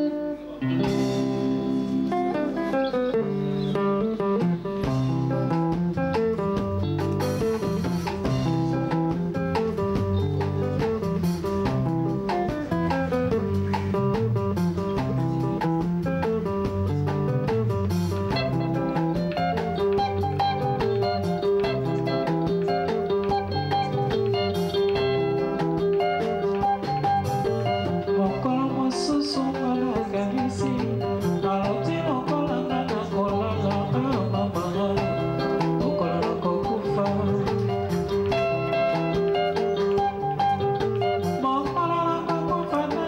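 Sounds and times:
interlocking guitar lines: 0:00.0 - 0:43.0.

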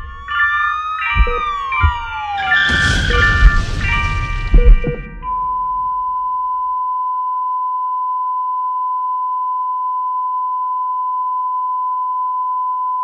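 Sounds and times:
high electronic test tone: 0:00.0 - 0:06.3.

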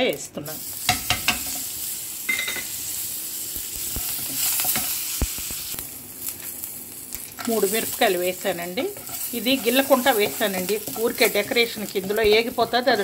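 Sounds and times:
leaves sizzling in hot oil: 0:00.0 - 0:13.0.

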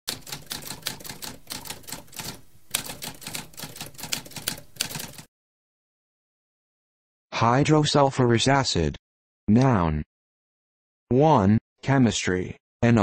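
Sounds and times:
typewriter keys clattering: 0:00.1 - 0:05.3.

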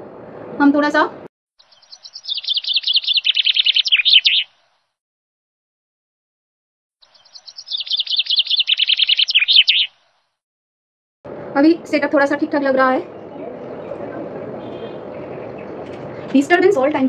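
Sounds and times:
bird twittering: 0:01.6 - 0:04.6, 0:07.0 - 0:10.1.

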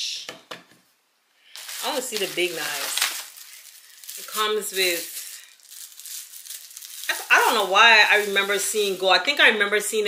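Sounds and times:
plastic packaging crinkling: 0:01.5 - 0:09.6.

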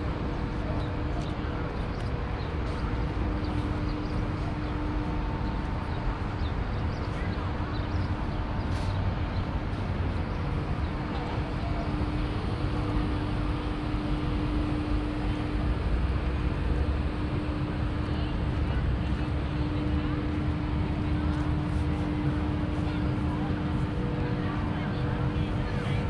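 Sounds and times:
droning hum: 0:00.0 - 0:26.0
low street rumble: 0:00.0 - 0:26.0
passers-by voices: 0:00.0 - 0:26.0.

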